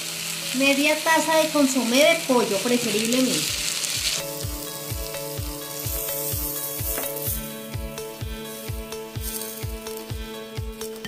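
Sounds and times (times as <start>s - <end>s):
vegetables sizzling in a pan: 0.0s - 11.0s
background music with beat: 3.9s - 11.0s.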